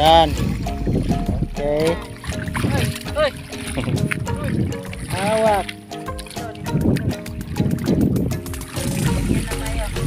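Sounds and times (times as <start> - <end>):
background music with held notes: 0.0 - 10.0
sea water splashing: 0.0 - 10.0.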